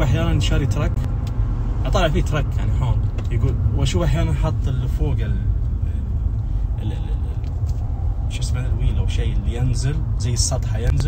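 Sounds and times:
car cabin road noise: 0.0 - 11.0
man talking: 1.8 - 6.1, 8.3 - 11.0.

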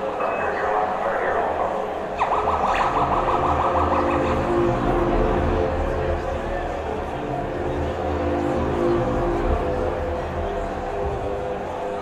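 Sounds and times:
warbling siren-like tone: 0.1 - 7.1
steady low rumble: 2.2 - 11.7.

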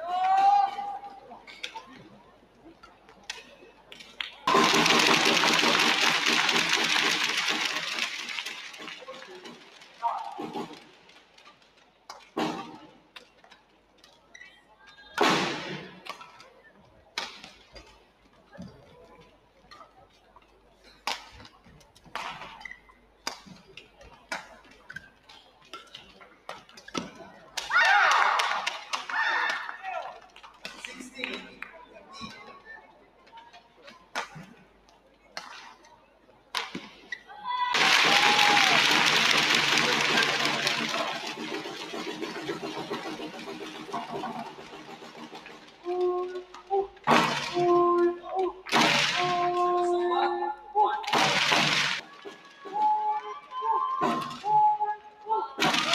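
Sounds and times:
crowd cheering: 4.2 - 10.9, 27.6 - 30.5, 37.3 - 49.8, 50.8 - 54.7, 55.3 - 55.9
crowd shout: 37.3 - 41.3.

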